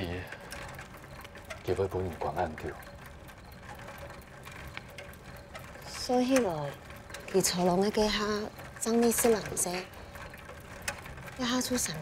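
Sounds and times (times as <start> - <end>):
bicycle freewheel clicking: 0.0 - 12.0.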